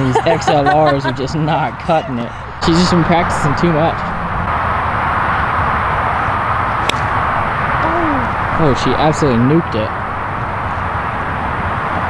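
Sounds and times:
highway traffic rush: 0.0s - 12.0s
golf club striking ball: 6.7s - 7.2s.

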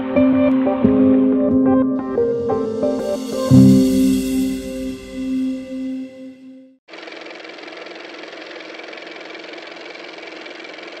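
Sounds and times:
machine rattling and humming: 6.9s - 11.0s.

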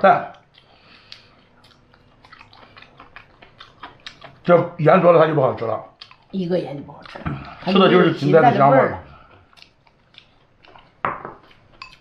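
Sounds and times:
chewing soft food: 0.2s - 12.0s.

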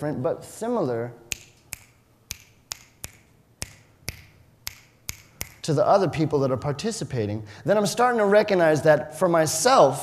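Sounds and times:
fingers snapping: 1.3s - 5.7s.

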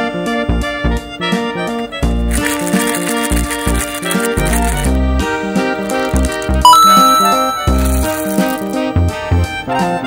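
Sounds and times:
background music: 0.0s - 10.0s
candies pouring and rattling: 2.3s - 4.9s, 5.8s - 8.8s.

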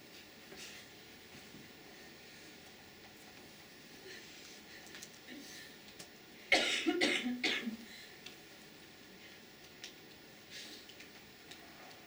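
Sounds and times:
person coughing: 6.5s - 7.8s.

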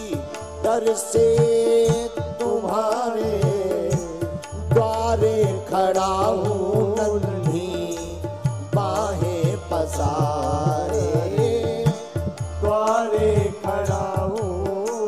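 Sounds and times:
man singing devotional chant: 0.0s - 15.0s.

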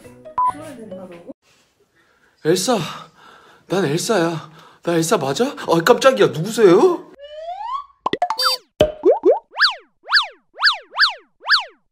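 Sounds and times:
cartoon rising glide: 7.2s - 8.7s, 9.3s - 11.9s
pops and short tones: 8.0s - 11.8s
quick up-and-down zips: 9.5s - 11.8s.

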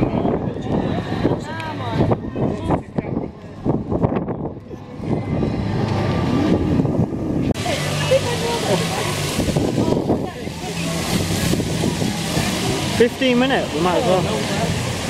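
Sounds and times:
wind on microphone: 0.0s - 13.0s
chatter of passers-by: 0.0s - 15.0s
fountain water splashing: 0.0s - 15.0s.

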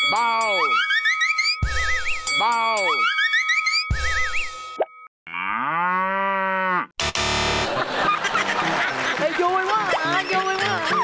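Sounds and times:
upbeat music: 0.0s - 4.7s, 7.1s - 11.0s
cow mooing: 5.3s - 6.9s.

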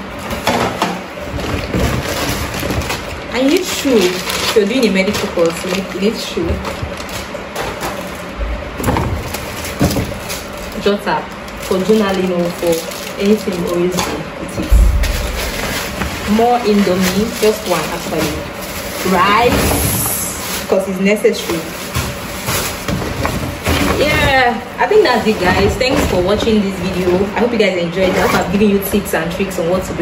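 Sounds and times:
plastic bags rustling: 0.0s - 29.8s
louder handling sounds: 0.1s - 20.8s.

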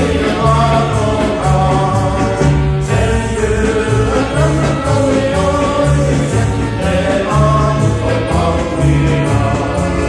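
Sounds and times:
double bass notes: 0.0s - 10.0s
folk ensemble playing: 0.0s - 10.0s.

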